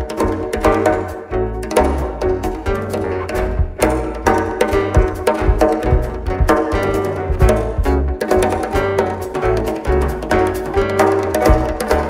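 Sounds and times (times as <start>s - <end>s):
bass notes: 0.0s - 12.0s
drums: 0.0s - 12.0s
guitar: 0.0s - 12.0s
piano: 0.0s - 12.0s
portuguese guitar melody: 0.0s - 12.0s.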